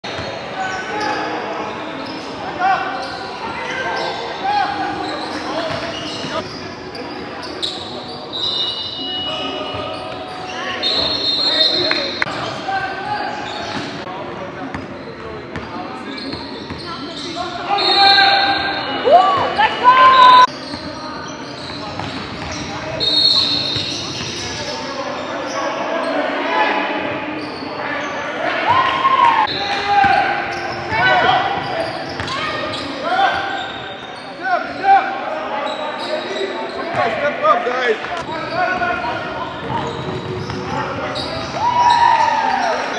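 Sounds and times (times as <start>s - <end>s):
sneakers squeaking: 0.0s - 26.3s, 27.0s - 42.9s
players calling out: 16.2s - 20.5s.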